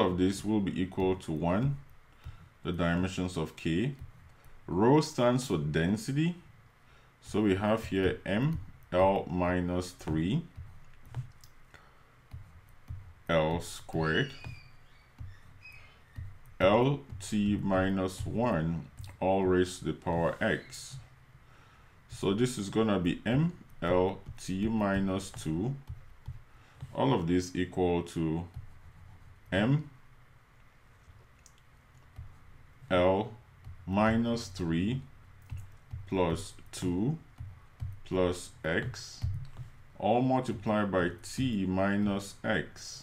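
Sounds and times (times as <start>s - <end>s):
faint clicks of writing: 0.3s - 4.7s, 7.3s - 29.9s, 30.6s - 40.0s
stylus tapping on pen tablet: 3.9s - 4.6s, 7.8s - 9.3s, 9.9s - 11.6s, 12.3s - 21.1s, 23.2s - 27.0s, 28.5s - 29.3s, 32.0s - 32.5s, 33.6s - 34.4s, 35.4s - 39.8s.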